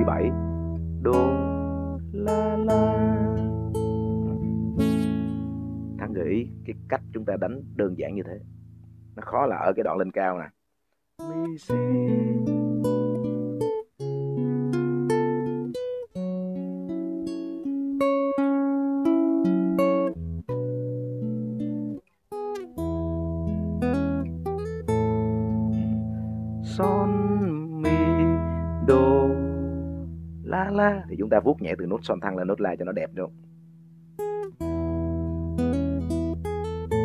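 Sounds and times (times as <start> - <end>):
fingerpicked guitar chords: 0.0 - 10.1, 11.2 - 37.0.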